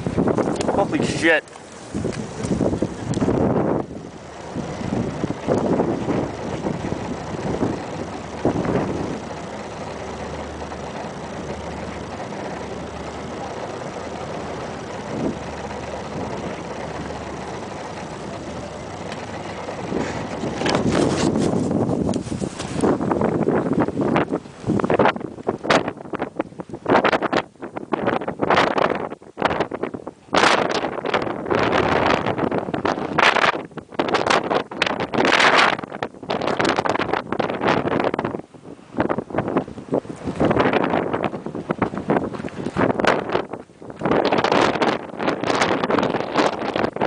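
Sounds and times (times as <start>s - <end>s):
wind buffeting microphone: 0.0s - 47.0s.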